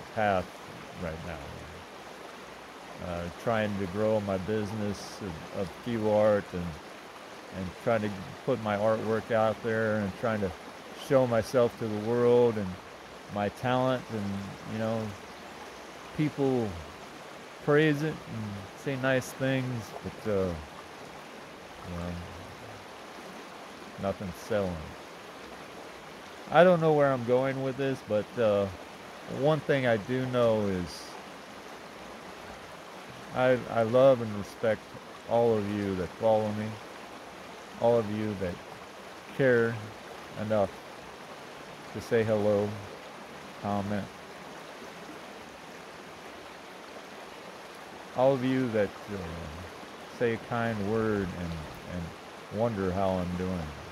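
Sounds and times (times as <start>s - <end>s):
creek water running over rocks: 0.0s - 53.9s.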